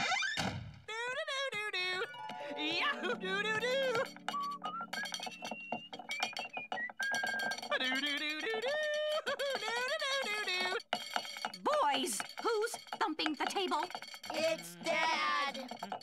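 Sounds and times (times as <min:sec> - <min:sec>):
plucked-string music: 0:01.9 - 0:08.5
cartoon man singing wordless notes: 0:14.4 - 0:15.8.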